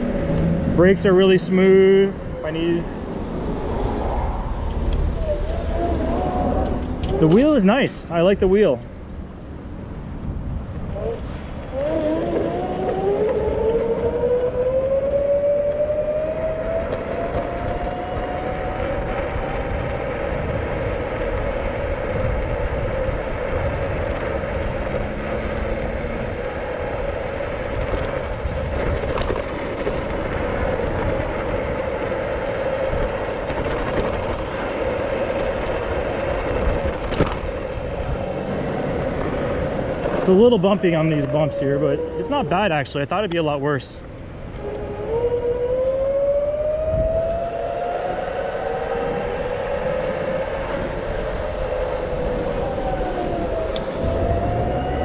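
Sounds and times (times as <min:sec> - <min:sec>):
wind on microphone: 0:00.0 - 0:42.8, 0:44.0 - 0:55.0
road rumble: 0:00.0 - 0:55.0
electric scooter motor whine: 0:02.2 - 0:07.6, 0:11.6 - 0:42.6, 0:44.3 - 0:55.0.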